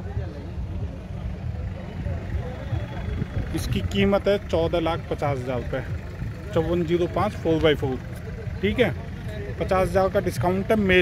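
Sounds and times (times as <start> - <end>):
faint background voices: 0.0 - 10.5
steady low rumble: 0.0 - 11.0.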